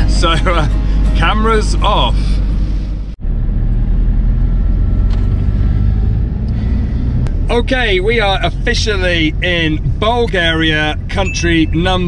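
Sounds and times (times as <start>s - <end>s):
van engine and road noise: 0.0s - 12.0s.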